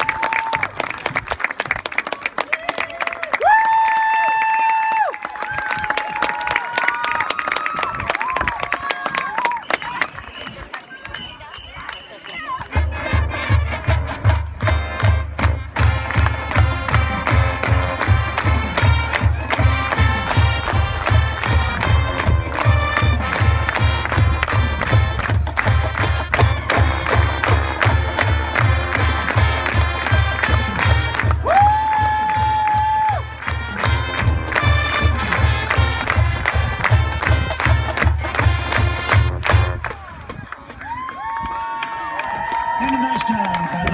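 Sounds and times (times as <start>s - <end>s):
marching band brass: 11.2s - 40.2s
driving drum beat: 12.7s - 39.8s.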